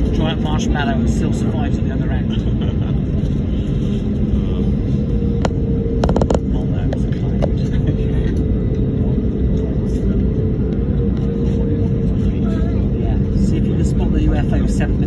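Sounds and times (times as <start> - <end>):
aircraft engines rumbling: 0.0 - 15.0
constant hum: 0.0 - 15.0.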